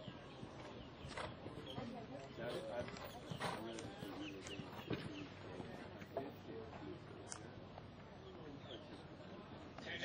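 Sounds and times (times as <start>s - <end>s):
horse hoofbeats on sand: 0.0s - 5.8s.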